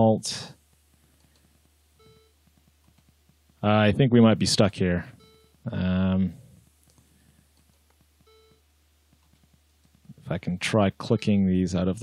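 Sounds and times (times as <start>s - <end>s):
faint clicks: 0.7s - 1.8s
faint computer beep: 2.0s - 2.4s, 8.2s - 8.7s.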